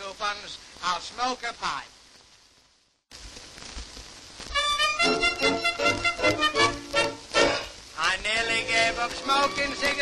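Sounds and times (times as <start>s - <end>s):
record surface hiss: 0.0s - 10.0s
band playing instrumental: 4.6s - 10.0s.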